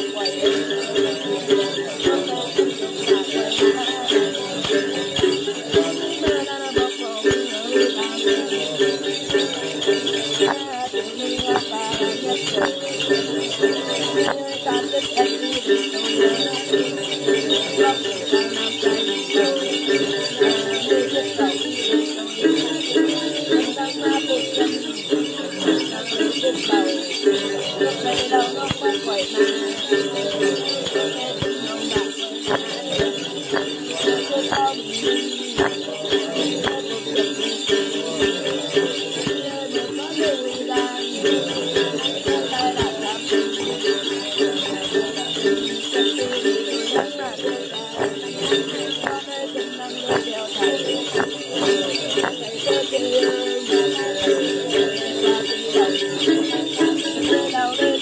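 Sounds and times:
plucked lute: 0:00.0 - 0:58.0
small bells jingling: 0:00.0 - 0:58.0
woman chanting: 0:00.0 - 0:58.0.

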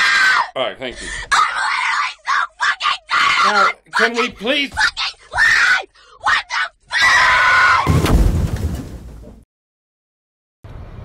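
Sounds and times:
woman screaming: 0:00.0 - 0:00.5, 0:01.3 - 0:03.8, 0:04.8 - 0:07.9.

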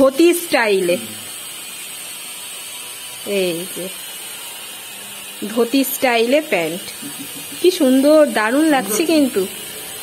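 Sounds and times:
power tool whirring on stone: 0:00.0 - 0:10.0.

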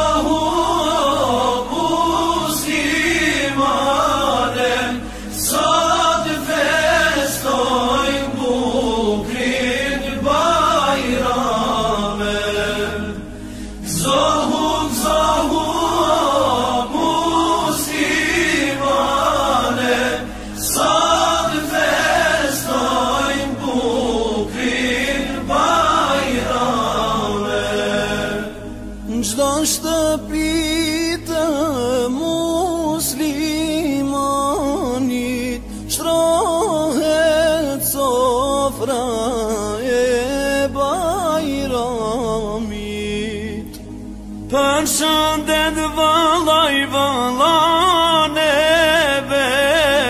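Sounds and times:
voices chanting: 0:13.8 - 0:28.7.

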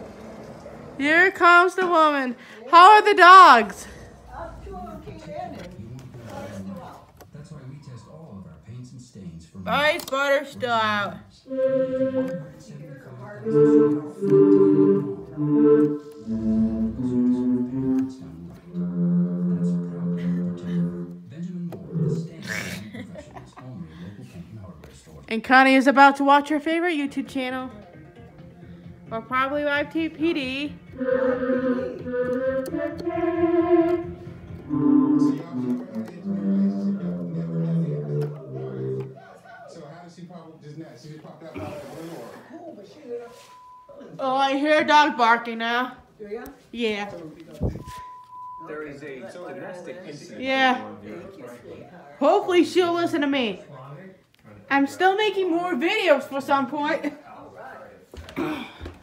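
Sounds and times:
electronic keyboard choir chords: 0:11.5 - 0:12.5, 0:13.4 - 0:18.3, 0:31.0 - 0:39.1.

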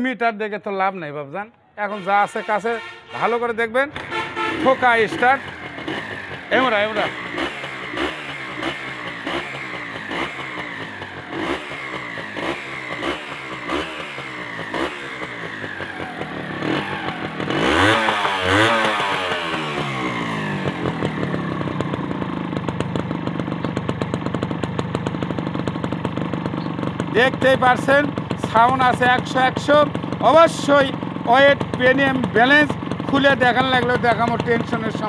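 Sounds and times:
motorcycle engine revving and idling: 0:03.4 - 0:35.0.

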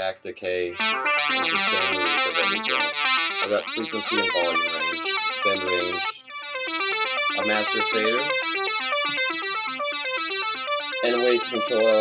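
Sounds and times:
synthesizer fast bright notes: 0:00.8 - 0:12.0.

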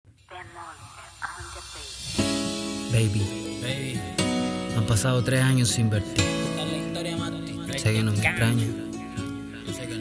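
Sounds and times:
steady hiss: 0:00.1 - 0:04.7.

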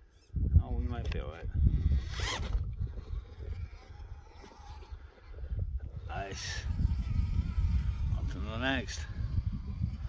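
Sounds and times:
wind rumble on microphone: 0:00.0 - 0:10.0
rc car motor whirring: 0:01.5 - 0:10.0.

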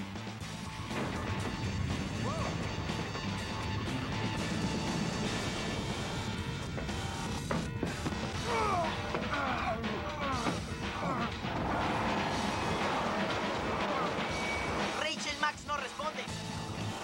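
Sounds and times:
cartoon background music: 0:00.0 - 0:17.0.

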